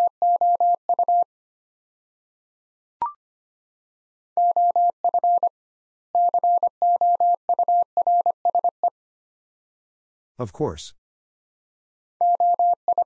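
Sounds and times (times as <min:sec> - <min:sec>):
morse code beeps: 0:04.4 - 0:05.5, 0:06.2 - 0:08.7, 0:12.2 - 0:13.0.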